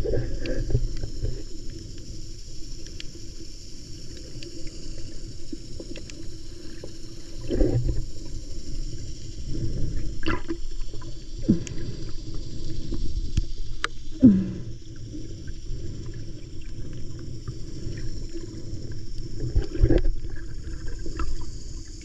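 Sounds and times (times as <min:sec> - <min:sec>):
muffled underwater water rumble: 0:00.0 - 0:22.0
small clicks underwater: 0:00.0 - 0:22.0.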